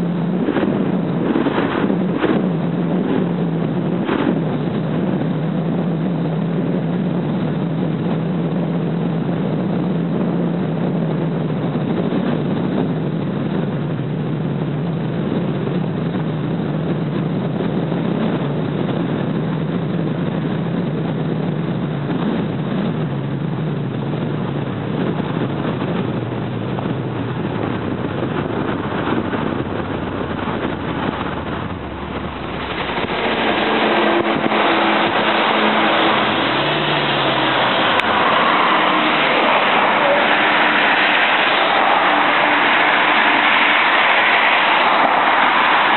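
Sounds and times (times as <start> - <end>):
car engine hum: 0.0 - 45.9
road noise: 0.0 - 45.9.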